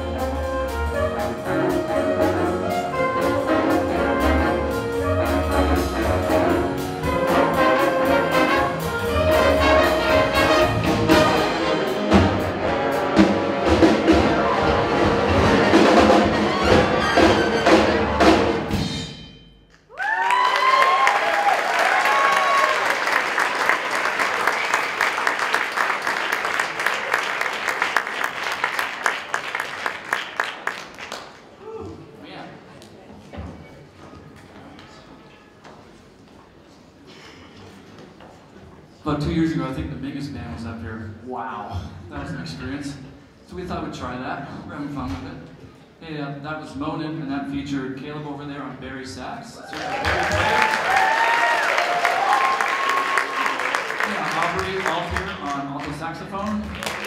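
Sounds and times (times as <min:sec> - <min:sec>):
jazz big band playing: 0:00.0 - 0:19.6
audience applause and cheers: 0:19.8 - 0:32.1, 0:49.6 - 0:57.0.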